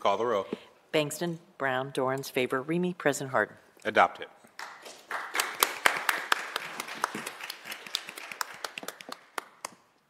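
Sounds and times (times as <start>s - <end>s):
people applauding: 4.6s - 9.9s.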